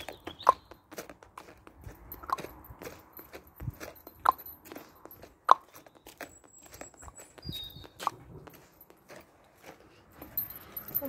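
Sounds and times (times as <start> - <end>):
footsteps on paving slabs: 0.0 - 11.0.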